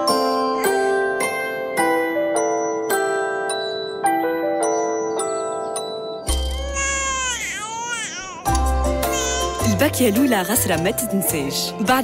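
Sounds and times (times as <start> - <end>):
glockenspiel lullaby melody: 0.0 - 12.0
newborn baby crying: 6.4 - 9.7.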